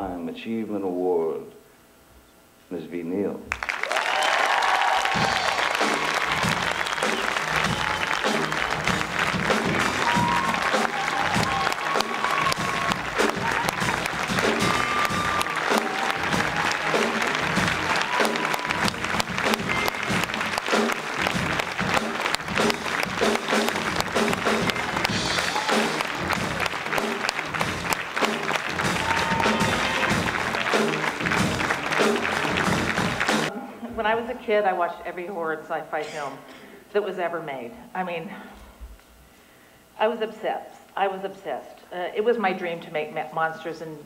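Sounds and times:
audience applauding: 0:03.5 - 0:33.5
music playing: 0:05.0 - 0:33.5.

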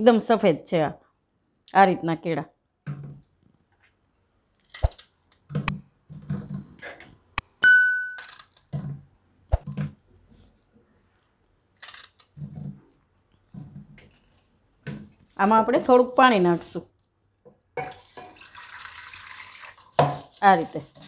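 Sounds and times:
ringing metallic ding: 0:07.6 - 0:08.3.

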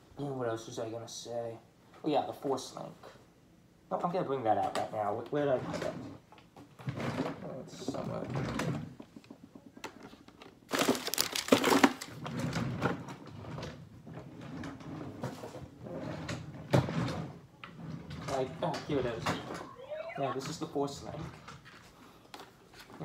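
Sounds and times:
rummaging rustling: 0:07.0 - 0:13.0.

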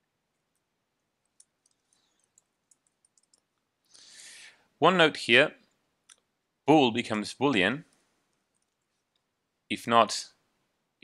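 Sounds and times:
computer keyboard typing: 0:01.2 - 0:03.5.

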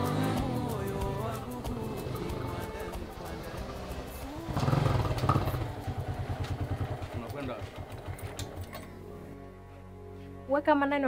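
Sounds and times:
small motorcycle engine: 0:00.0 - 0:08.9.

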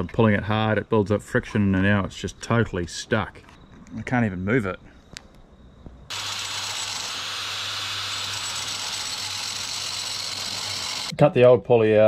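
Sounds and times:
angle grinder cutting: 0:06.1 - 0:11.1.

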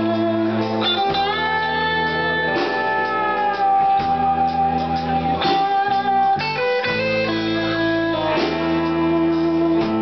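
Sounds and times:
blues band playing: 0:00.0 - 0:10.0
electric guitar sustained notes: 0:00.0 - 0:10.0.

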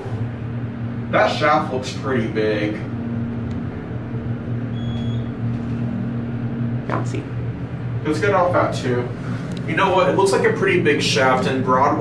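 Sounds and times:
elevator drive humming: 0:00.0 - 0:12.0
short high beep: 0:04.7 - 0:05.3.

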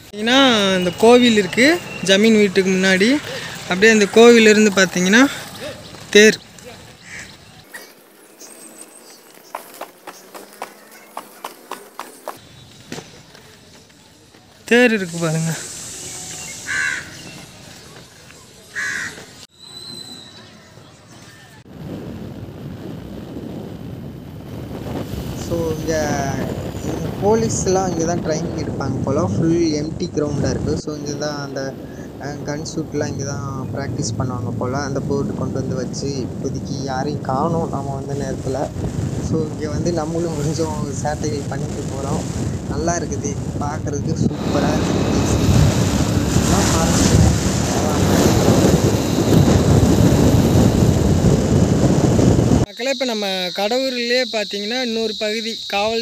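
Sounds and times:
wind buffeting microphone: 0:21.6 - 0:52.7.

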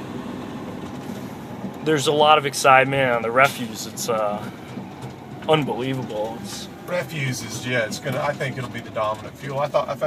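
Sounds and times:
road noise: 0:00.0 - 0:10.0
truck engine hum: 0:00.0 - 0:10.0
man talking: 0:01.8 - 0:04.6, 0:05.4 - 0:10.0.

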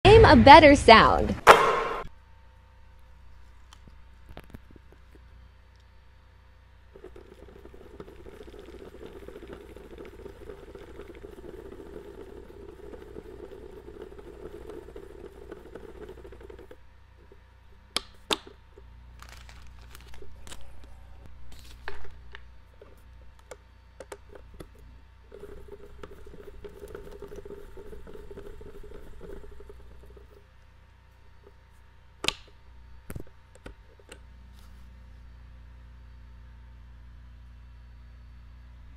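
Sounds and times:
rotary vise whirring: 0:07.0 - 0:17.9, 0:24.2 - 0:30.5.

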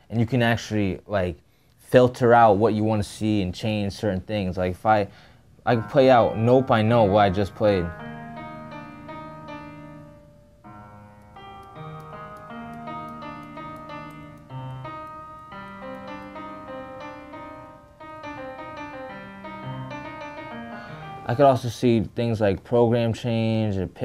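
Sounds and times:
piano notes and chords: 0:05.6 - 0:22.0.

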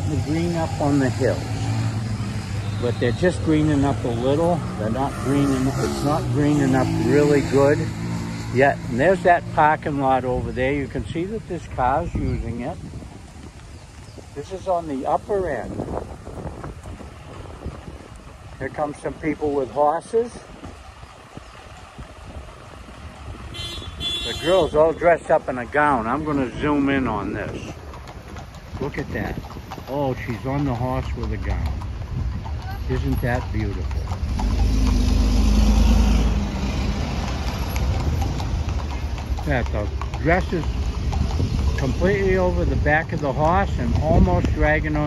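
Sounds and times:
vehicle driving past: 0:00.0 - 0:10.6, 0:31.2 - 0:42.5
faint street traffic: 0:00.0 - 0:45.0
wind buffeting microphone: 0:09.8 - 0:45.0.

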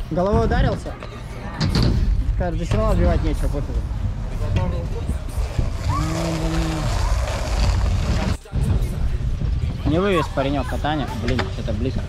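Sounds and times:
low rumbling noise: 0:01.8 - 0:10.0.

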